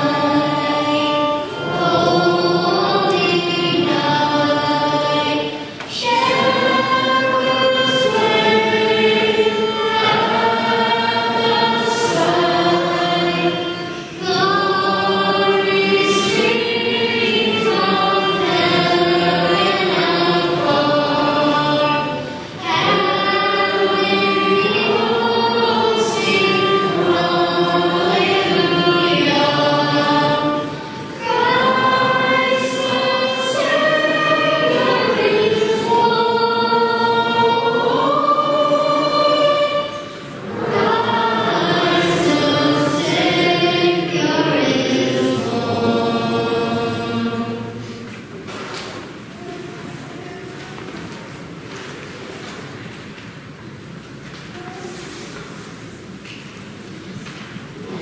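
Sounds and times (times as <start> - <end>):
choir singing a hymn: 0.0 - 53.9, 54.6 - 58.0.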